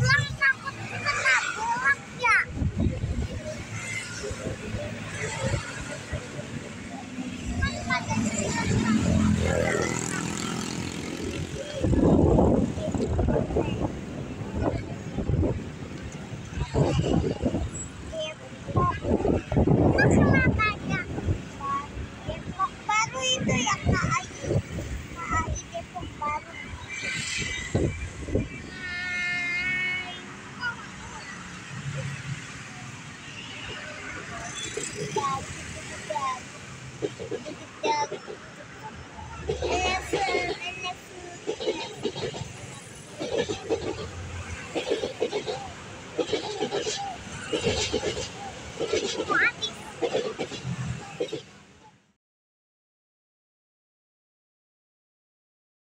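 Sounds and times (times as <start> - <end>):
wind buffeting microphone: 0.0 - 31.4
indistinct voices: 0.0 - 51.5
electric train rolling past: 0.0 - 51.9.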